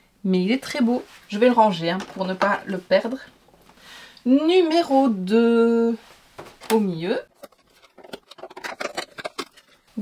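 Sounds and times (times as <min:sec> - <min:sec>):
cardboard clicks and rustles: 0:07.4 - 0:09.8.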